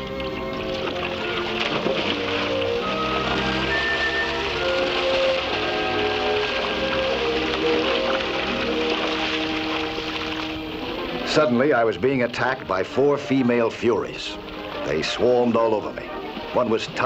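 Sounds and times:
background music of held notes: 0:00.0 - 0:17.0
water splashing from swimmers kicking: 0:00.0 - 0:17.0.

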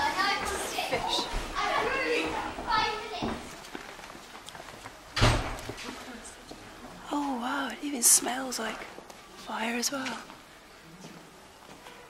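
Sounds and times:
people talking in background: 0:00.0 - 0:04.4.

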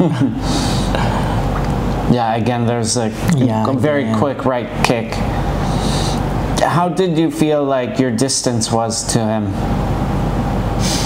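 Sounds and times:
man laughing: 0:00.0 - 0:01.2
breathy exhale: 0:05.4 - 0:06.2, 0:10.8 - 0:11.0.

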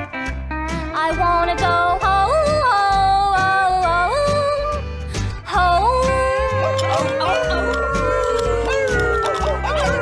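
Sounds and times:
country backing track: 0:00.0 - 0:10.0
woman singing: 0:00.8 - 0:08.7.

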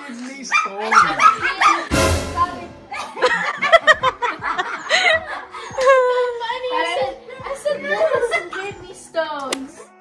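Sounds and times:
people talking: 0:00.0 - 0:03.6
sudden noisy burst: 0:01.9 - 0:03.2
group of people laughing: 0:02.9 - 0:06.3, 0:07.5 - 0:08.7.

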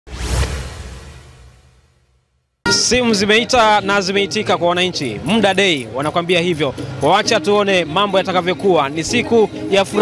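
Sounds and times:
whoosh with deep boom: 0:00.1 - 0:02.4.

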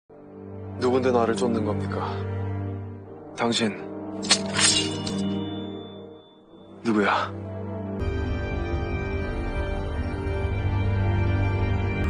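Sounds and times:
dramatic background music: 0:00.1 - 0:12.0
sword drawn from sheath: 0:04.2 - 0:05.4.

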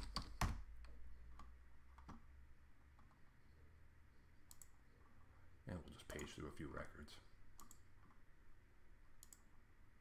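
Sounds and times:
faint room hiss: 0:00.0 - 0:10.0
computer mouse clicks: 0:04.4 - 0:04.8, 0:07.6 - 0:08.2, 0:09.2 - 0:09.5.

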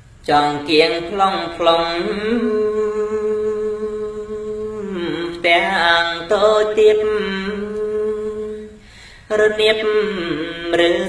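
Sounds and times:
man chanting unaccompanied: 0:00.3 - 0:11.0.

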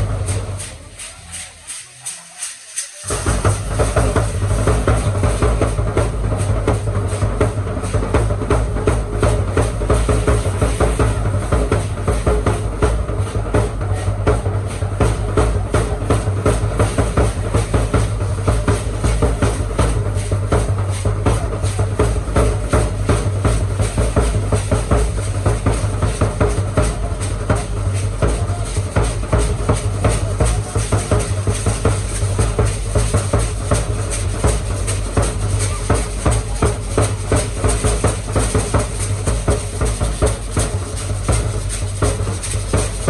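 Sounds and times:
hand rattles shaking: 0:00.0 - 0:04.4, 0:27.9 - 0:43.0
drum beating fast rhythm: 0:00.0 - 0:43.0.

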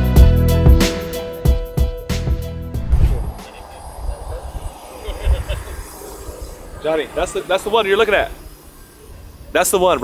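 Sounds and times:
irregular low rumble: 0:02.7 - 0:07.7.

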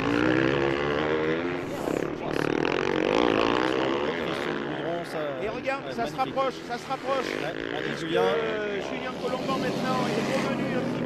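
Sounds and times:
motocross engines revving: 0:00.0 - 0:11.0.

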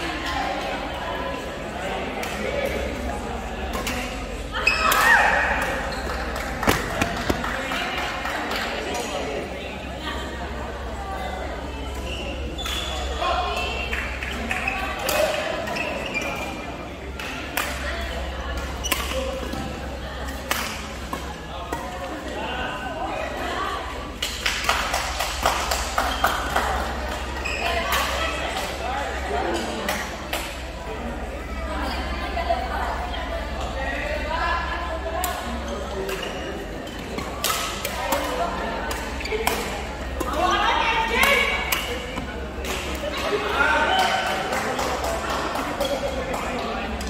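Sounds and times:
murmur of spectator chatter: 0:00.0 - 0:47.0.

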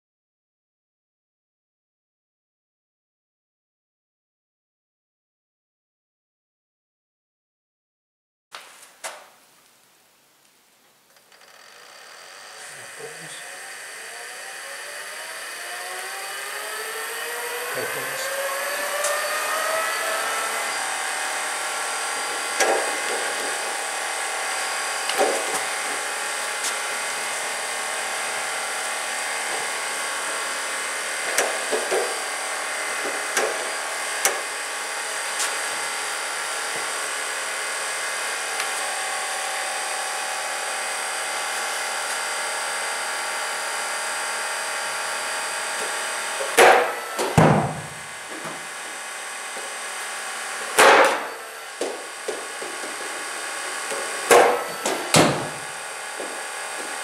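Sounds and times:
electric motors whining: 0:11.4 - 0:57.0.

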